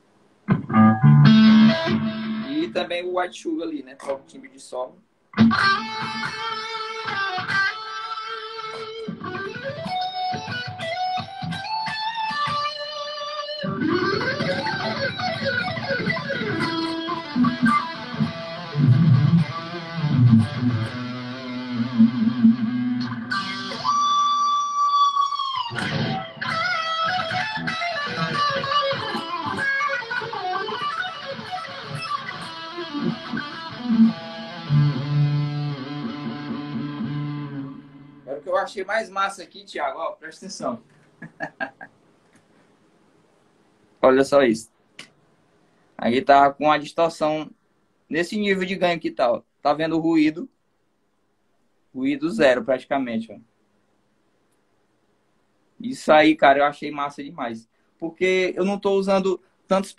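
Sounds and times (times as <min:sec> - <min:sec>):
distorted electric guitar lead: 0:00.5 - 0:02.8, 0:05.4 - 0:38.4.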